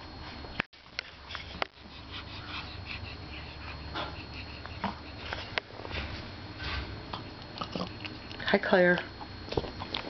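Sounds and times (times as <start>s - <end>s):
dog sniffing: 1.0s - 5.6s.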